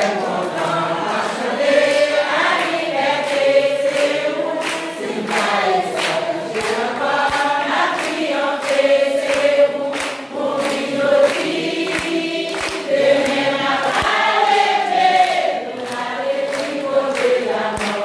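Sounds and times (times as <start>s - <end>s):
congregation singing a hymn: 0.0s - 18.0s
hands clapping in time: 0.0s - 18.0s.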